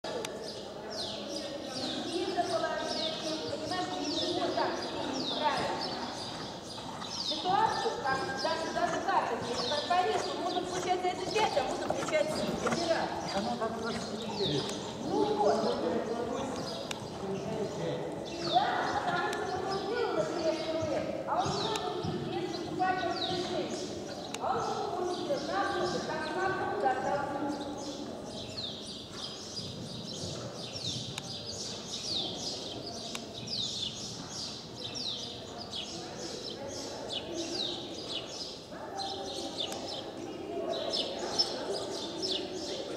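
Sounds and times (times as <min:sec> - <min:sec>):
small birds chirping: 0:00.1 - 0:42.9
horse hoofbeats cantering on sand: 0:02.4 - 0:26.7, 0:28.4 - 0:32.7.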